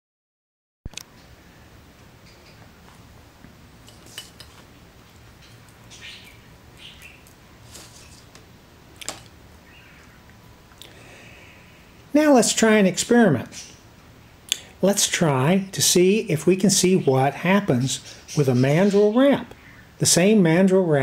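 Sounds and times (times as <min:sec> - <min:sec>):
faint room hiss: 0:00.9 - 0:21.0
small objects scraping rustles: 0:03.8 - 0:06.0, 0:07.2 - 0:09.3.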